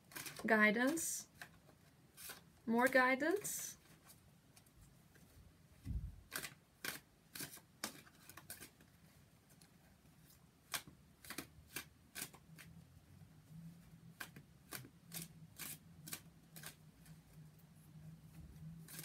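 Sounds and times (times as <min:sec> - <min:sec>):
cards being shuffled: 0:00.0 - 0:02.5, 0:03.3 - 0:08.9, 0:09.5 - 0:12.7.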